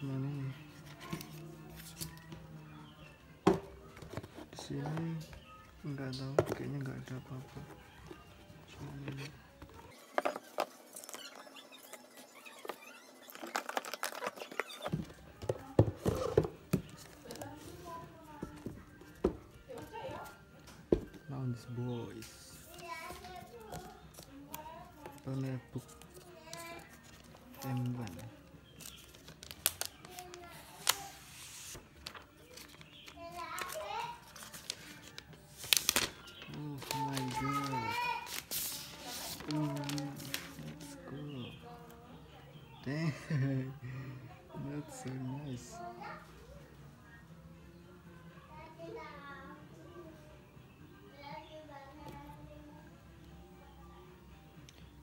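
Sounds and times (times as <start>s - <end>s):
faint music: 0.0s - 55.0s
faint voices: 0.0s - 55.0s
plastic wrap crinkling: 10.0s - 15.0s, 22.7s - 41.0s
cardboard packaging handled: 12.8s - 18.7s, 28.8s - 41.0s.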